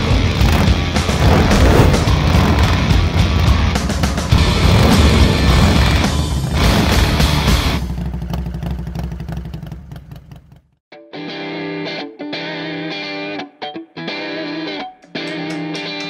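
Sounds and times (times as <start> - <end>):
motorcycle engine revving: 0.0 - 10.8.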